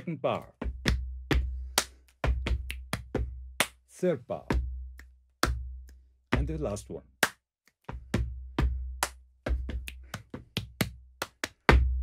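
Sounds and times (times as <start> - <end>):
deep chest thumps: 0.5 - 3.6, 7.9 - 11.0
sharp slaps and snaps: 1.7 - 3.8, 7.2 - 8.0, 9.0 - 11.8.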